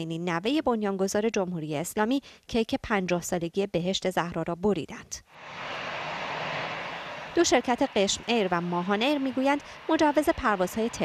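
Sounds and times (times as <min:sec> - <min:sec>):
jet airliner taking off: 0:05.4 - 0:11.0.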